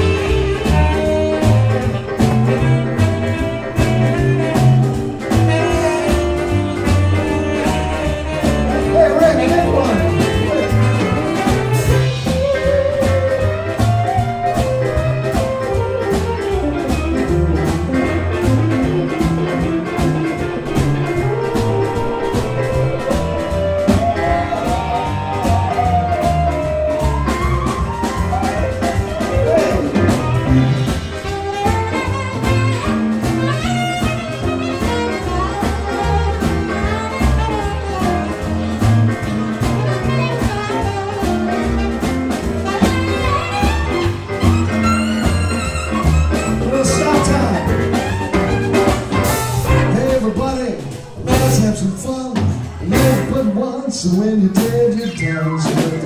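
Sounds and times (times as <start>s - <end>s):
electric guitar solo: 0.0s - 50.0s
saxophone solo: 0.0s - 53.0s
drums and bass: 0.0s - 56.0s.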